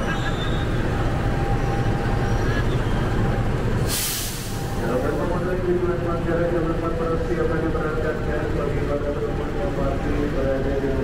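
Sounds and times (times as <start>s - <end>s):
diesel locomotive idling: 0.0s - 11.0s
compressed air hiss: 3.9s - 4.6s.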